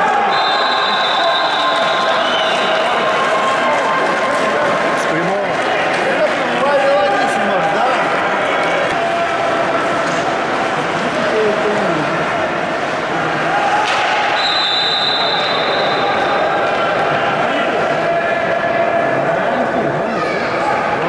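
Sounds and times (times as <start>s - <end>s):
referee's whistle blast: 0.3s - 2.8s, 14.4s - 16.4s.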